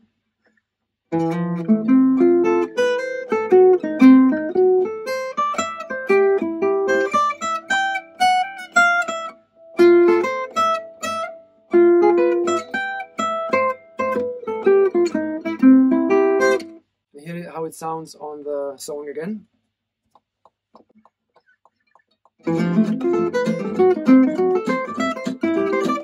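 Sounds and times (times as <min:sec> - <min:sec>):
acoustic guitar arpeggios: 0:01.1 - 0:16.8, 0:20.8 - 0:26.0.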